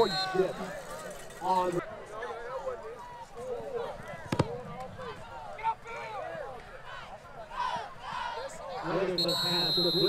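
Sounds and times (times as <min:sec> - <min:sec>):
football crowd shouting: 0:00.0 - 0:10.0.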